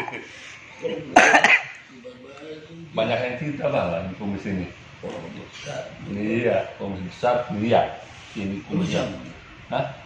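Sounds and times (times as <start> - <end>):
man's harsh cough-like vocal burst: 1.2 - 1.8.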